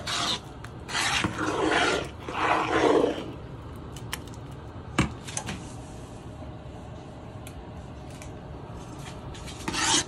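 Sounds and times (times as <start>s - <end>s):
metal spoon scraping pot: 9.6s - 10.0s.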